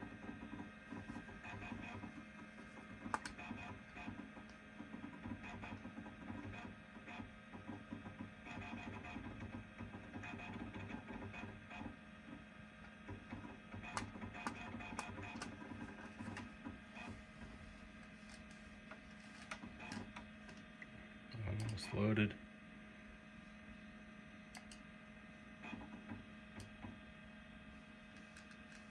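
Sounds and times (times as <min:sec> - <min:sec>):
computer hum: 0:00.0 - 0:28.9
sharp clicks: 0:24.5 - 0:24.8.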